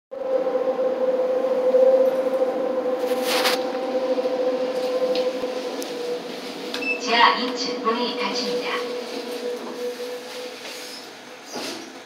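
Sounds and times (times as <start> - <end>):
subway train whine and rumble: 0.1 - 12.0.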